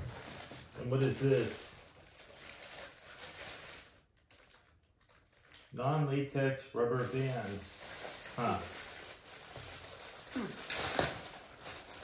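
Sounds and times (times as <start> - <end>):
plastic bag crinkling: 0.0 - 5.8, 7.0 - 12.0.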